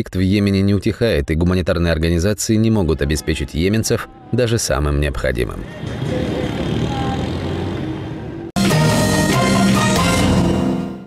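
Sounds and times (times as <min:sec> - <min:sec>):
road noise: 0:02.8 - 0:10.7
car engines humming: 0:05.4 - 0:08.8.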